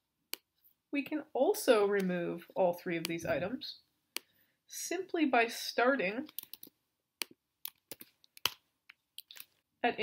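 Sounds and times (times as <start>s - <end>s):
computer keyboard keys clicking: 6.3s - 6.7s.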